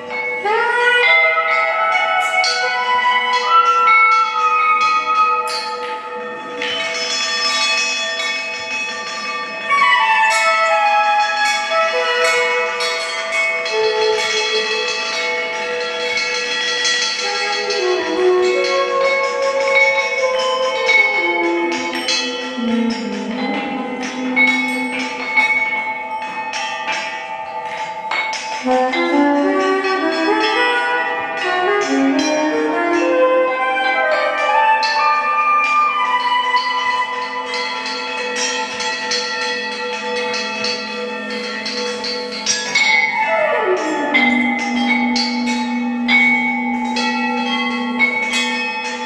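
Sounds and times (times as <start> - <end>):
bronze bells ringing: 0.0 - 49.0
low wavering tones: 0.0 - 49.0.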